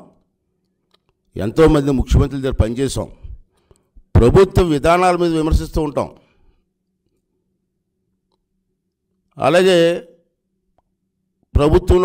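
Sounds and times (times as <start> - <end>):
man speaking into a microphone: 1.3 - 3.4, 4.1 - 6.2, 9.4 - 10.2, 11.5 - 12.0.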